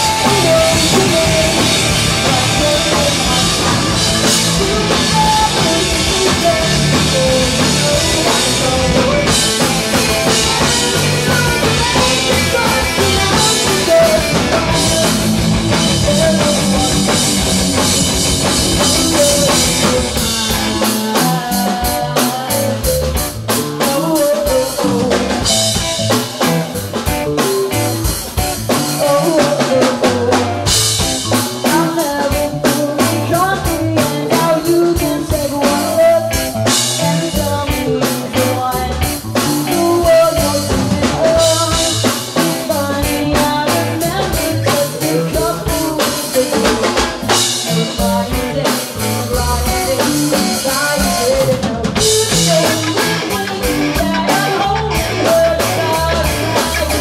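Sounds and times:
rock band playing live: 0.0s - 57.0s.

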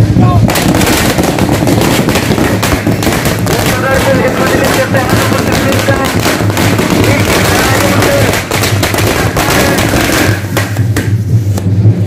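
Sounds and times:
steady low hum: 0.0s - 12.0s
sharp cracks: 0.4s - 11.7s.

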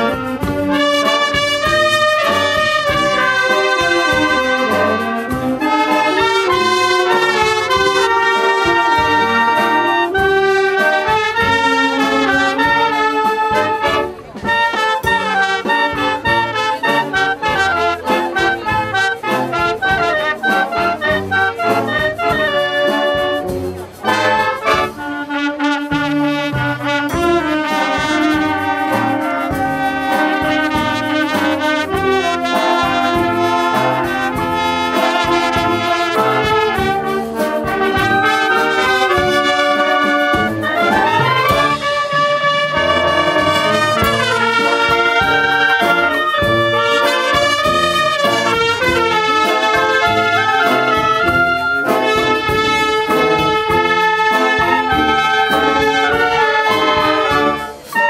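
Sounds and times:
wind band playing: 0.0s - 58.0s.

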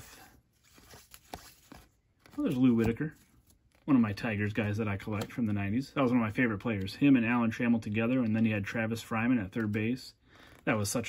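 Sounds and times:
cards sliding and ticking: 0.0s - 3.9s.

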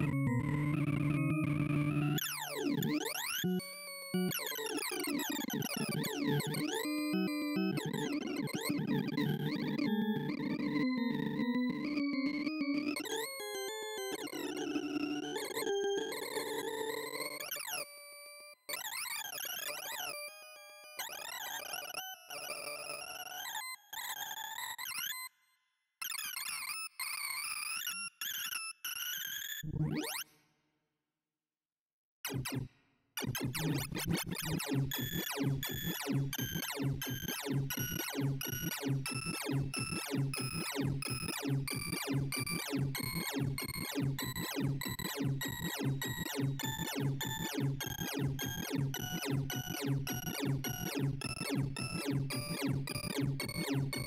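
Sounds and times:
synthesized beeping tones: 36.4s - 54.0s.

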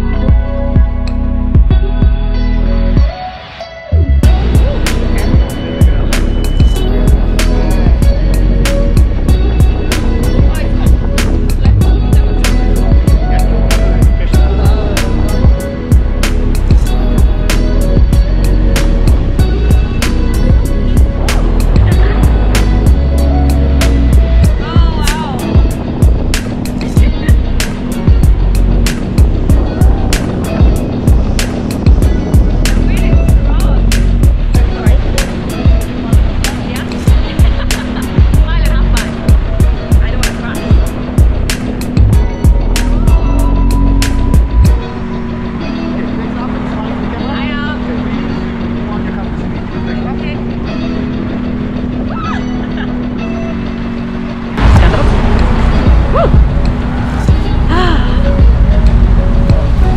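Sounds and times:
music with booming bass beat: 0.0s - 45.7s, 50.5s - 59.9s
wind rushing over microphone: 0.0s - 59.9s.

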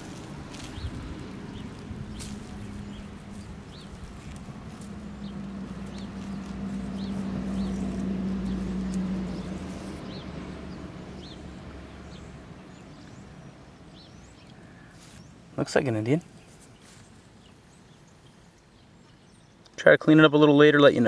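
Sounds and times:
low engine drone: 0.0s - 14.9s
bird chirping: 0.0s - 21.0s.

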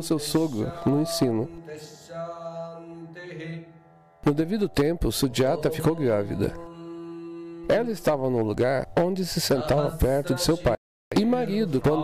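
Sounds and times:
voice holding a chanted note: 0.0s - 12.0s.

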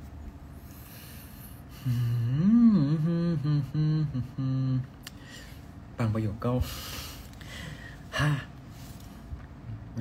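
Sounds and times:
man humming: 1.6s - 5.2s, 8.0s - 8.6s.

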